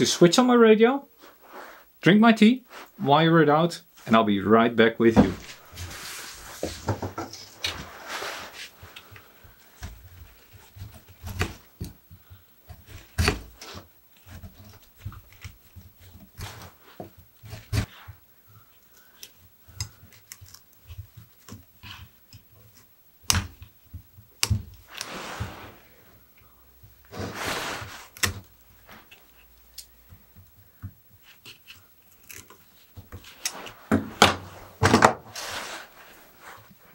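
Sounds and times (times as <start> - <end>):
hand tools clicking and scraping wood: 5.1 - 25.6, 26.4 - 36.8.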